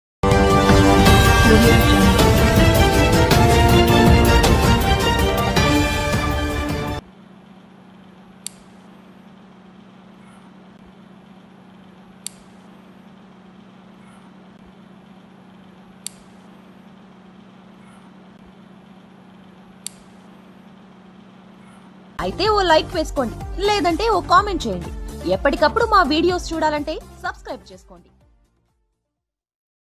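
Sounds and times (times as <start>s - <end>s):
low electrical hum: 5.8s - 28.0s.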